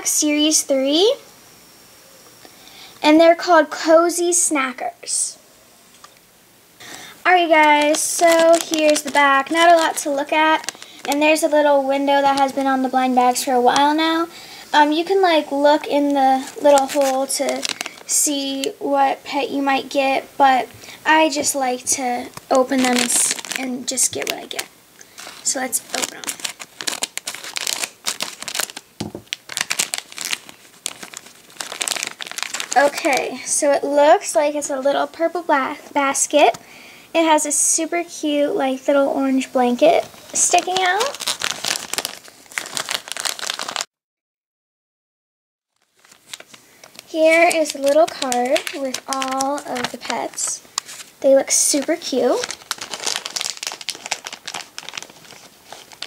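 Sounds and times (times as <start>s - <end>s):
plastic bag crinkling: 6.8s - 18.7s, 21.2s - 33.8s, 39.8s - 43.9s, 45.8s - 56.0s.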